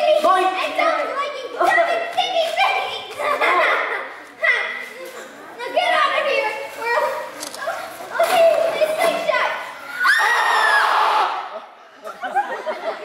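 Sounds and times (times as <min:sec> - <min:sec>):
children shouting: 0:08.6 - 0:11.8
child screaming high-pitched: 0:10.0 - 0:11.4.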